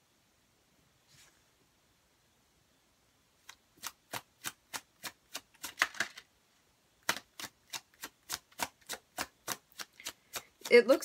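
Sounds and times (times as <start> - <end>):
cards being shuffled: 3.4 - 6.3.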